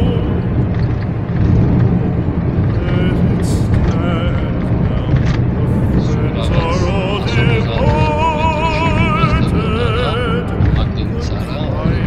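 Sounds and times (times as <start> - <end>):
music with singer: 0.0 - 1.9, 2.7 - 12.0
car driving rumble: 0.0 - 12.0.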